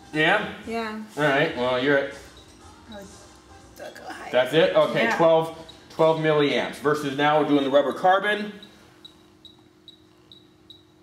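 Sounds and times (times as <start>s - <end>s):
faint steady hum: 0.0s - 11.0s
short high-pitched beeps: 7.9s - 11.0s.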